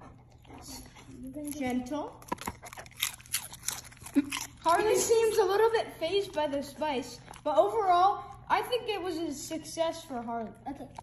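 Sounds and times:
dog crunching a chip: 0.3s - 11.0s.

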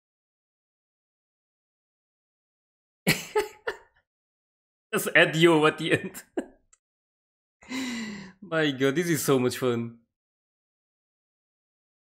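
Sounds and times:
man speaking: 5.0s - 6.4s, 8.4s - 10.0s.

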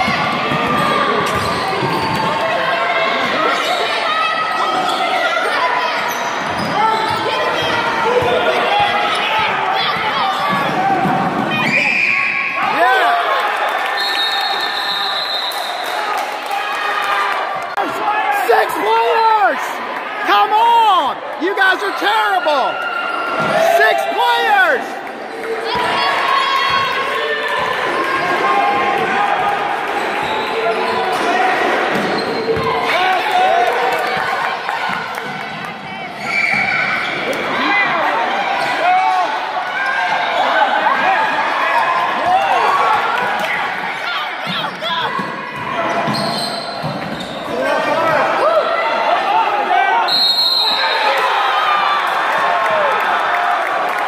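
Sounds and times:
people shouting and talking: 0.0s - 54.0s
sneakers squeaking on floor: 0.1s - 2.4s, 6.0s - 9.3s, 31.9s - 32.7s, 36.1s - 37.3s, 44.4s - 47.9s.

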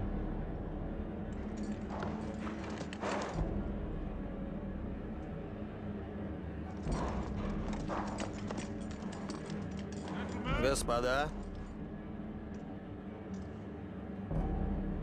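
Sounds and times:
horse hooves clip-clopping: 1.4s - 3.6s, 6.7s - 11.7s.

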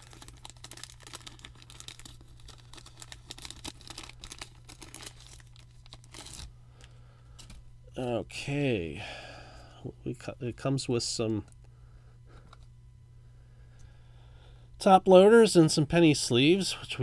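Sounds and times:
plastic wrap crinkling: 0.0s - 7.6s.

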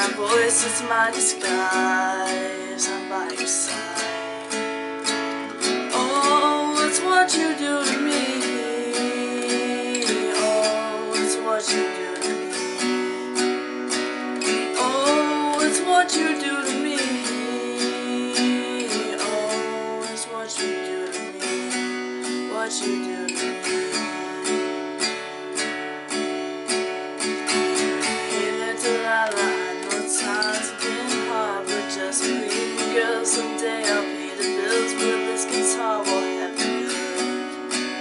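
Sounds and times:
man singing: 0.0s - 4.6s, 5.8s - 13.4s, 14.4s - 24.2s, 28.0s - 38.0s
acoustic guitar strumming: 0.0s - 38.0s.

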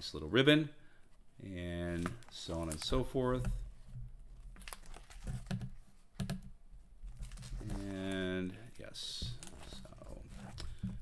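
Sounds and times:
book pages turning: 1.8s - 3.4s, 4.4s - 6.0s, 7.0s - 11.0s.

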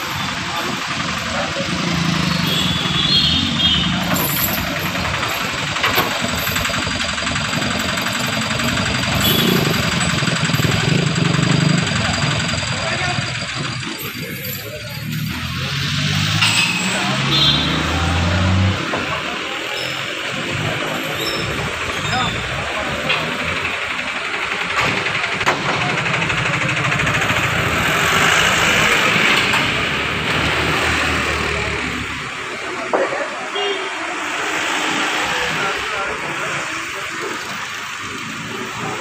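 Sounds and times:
vehicle engines rumbling: 0.0s - 39.0s.

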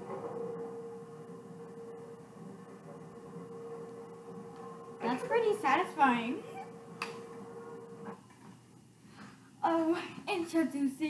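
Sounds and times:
steady hum-like tone: 0.0s - 11.0s.

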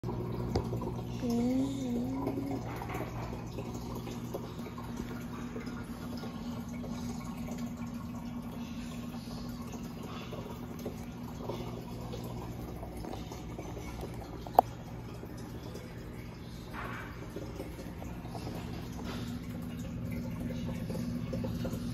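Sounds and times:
aquarium filter hum: 0.0s - 21.9s
water trickling: 0.0s - 21.9s.

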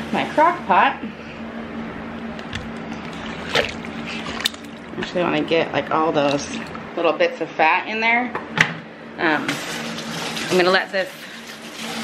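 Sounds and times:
steady hum: 0.0s - 9.4s.

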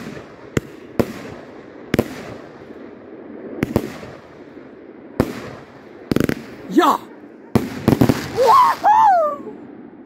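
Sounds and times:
fireworks exploding with echo: 0.0s - 9.0s.

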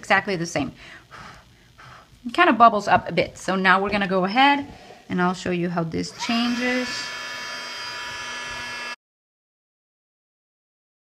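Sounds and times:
heat gun whining hum: 6.1s - 9.0s.

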